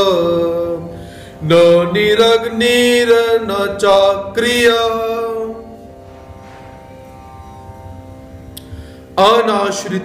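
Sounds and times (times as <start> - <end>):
instrumental drone: 0.0 - 10.0.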